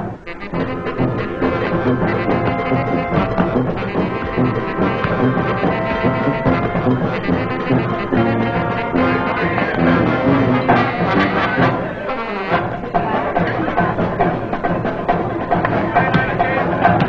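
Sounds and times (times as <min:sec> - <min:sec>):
brass band playing dance tune: 0:00.0 - 0:17.0.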